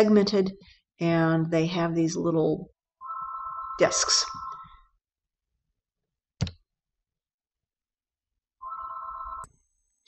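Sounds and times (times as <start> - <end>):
telephone ringing warbling tone: 3.0 - 4.8, 8.6 - 9.5.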